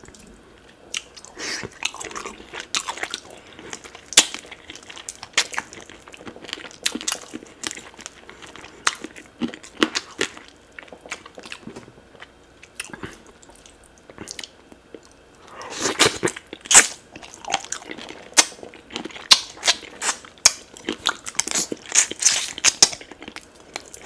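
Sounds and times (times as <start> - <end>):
biting and chewing mouth sounds: 0.0 - 24.0.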